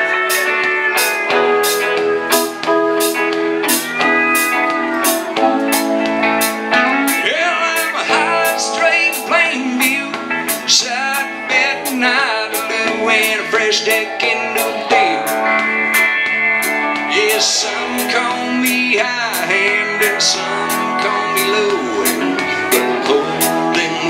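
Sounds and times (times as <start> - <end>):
electric guitars with bent notes: 0.0 - 24.0
steady drum beat: 0.0 - 24.0.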